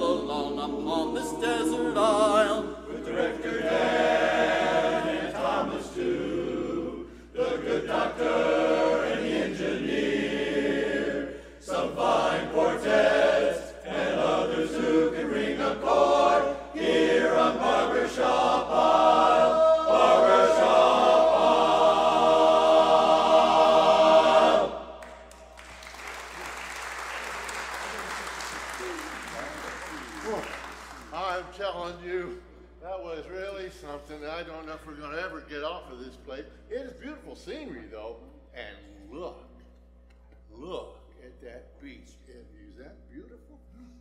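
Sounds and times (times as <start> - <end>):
men's barbershop chorus singing: 0.0 - 24.9.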